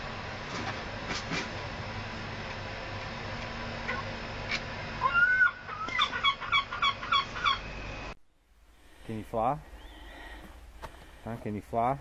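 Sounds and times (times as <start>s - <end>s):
gull calling: 5.0s - 7.7s.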